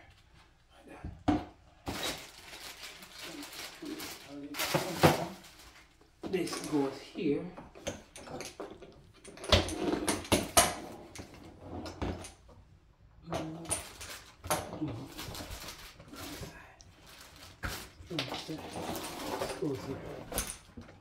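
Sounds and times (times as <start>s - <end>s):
plastic packaging rustling: 1.8s - 7.0s, 13.8s - 20.7s.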